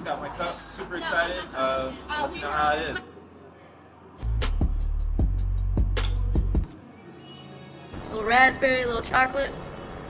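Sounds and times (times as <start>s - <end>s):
low background noise: 0.0s - 4.2s
bass-heavy music with fast beat: 4.2s - 6.6s.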